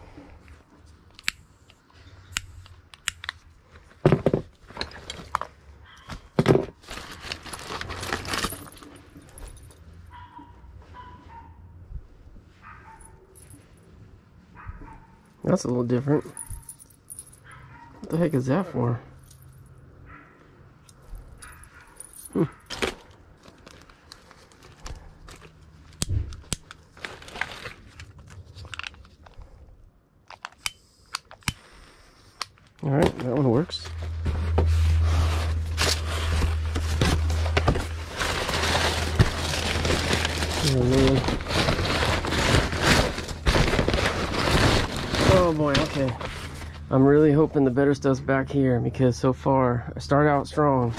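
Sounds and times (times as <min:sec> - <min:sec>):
paper and cardboard rustling: 0:06.1 - 0:09.5, 0:26.8 - 0:29.3, 0:32.8 - 0:46.9.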